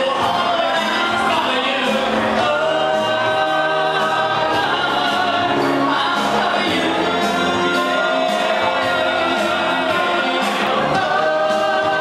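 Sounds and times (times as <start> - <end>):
men singing into microphones: 0.0 - 12.0
musical accompaniment: 0.0 - 12.0.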